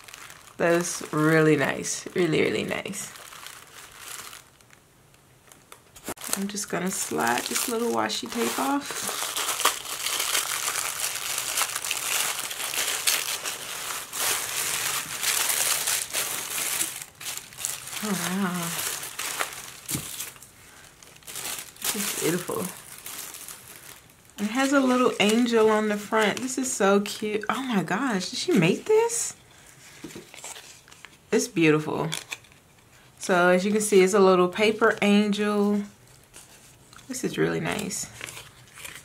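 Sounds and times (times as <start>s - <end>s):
tissue paper crinkling: 0.0s - 4.8s, 6.0s - 26.8s, 29.7s - 31.2s, 35.9s - 39.0s.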